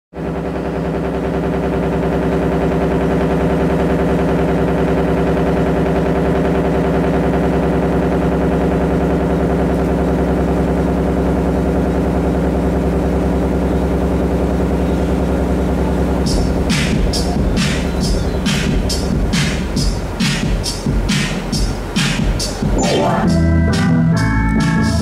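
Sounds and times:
pulsing analog synthesizer drone: 0.2s - 25.0s.

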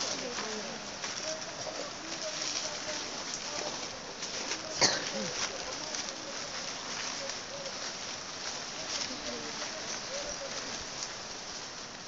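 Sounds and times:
distant voices: 0.0s - 11.5s
steady hiss: 0.0s - 12.0s.

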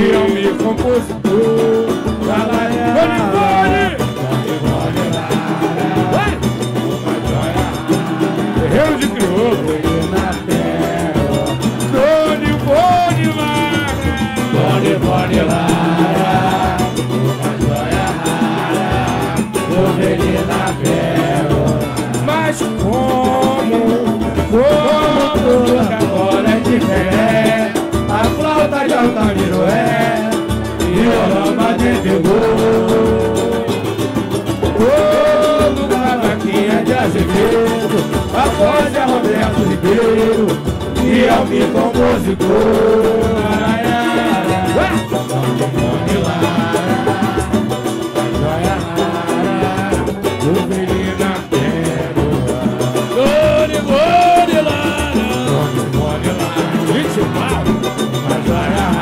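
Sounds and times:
cavaquinhos and guitar: 0.0s - 59.0s
crowd singing along: 0.0s - 59.0s
hand percussion samba beat: 0.0s - 59.0s
person singing into a microphone: 0.0s - 59.0s.

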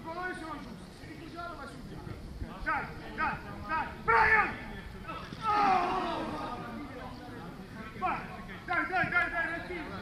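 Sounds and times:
men shouting: 5.3s - 6.8s.

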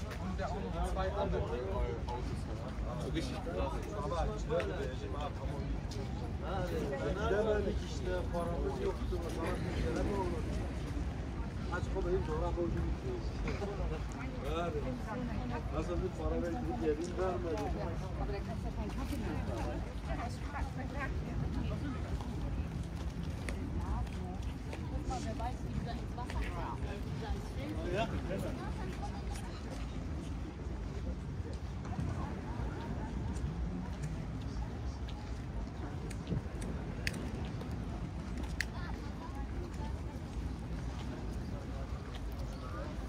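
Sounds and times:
chatter of passers-by: 0.0s - 43.0s
people talking: 0.0s - 43.0s
footsteps on pavement: 17.0s - 43.0s.

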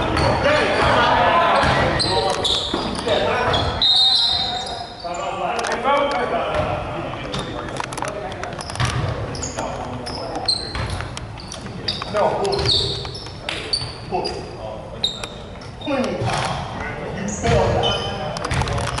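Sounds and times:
sneakers squeaking on court: 0.0s - 5.4s, 8.5s - 19.0s
voices talking and calling out: 0.0s - 19.0s
basketball bouncing: 6.5s - 6.7s, 8.7s - 9.3s, 17.5s - 18.9s.

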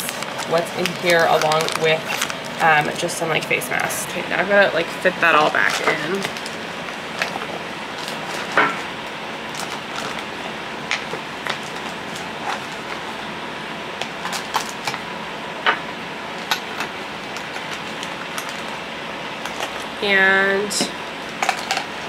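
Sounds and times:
plastic pouch crinkling: 0.1s - 2.6s.

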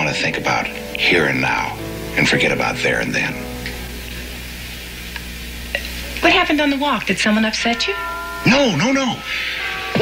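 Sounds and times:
steady hiss: 0.0s - 10.0s
low hum: 0.7s - 10.0s.

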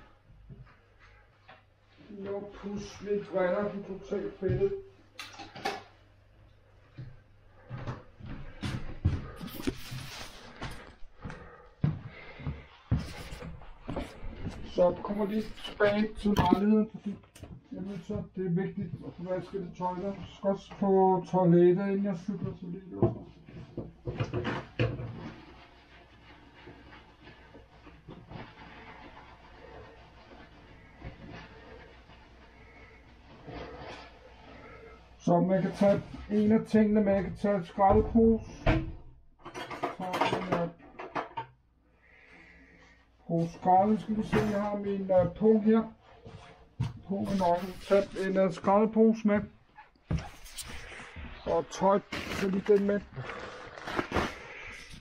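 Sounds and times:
faint rustling: 24.6s - 36.8s, 42.0s - 55.0s
knocks and clatters: 39.4s - 41.5s.

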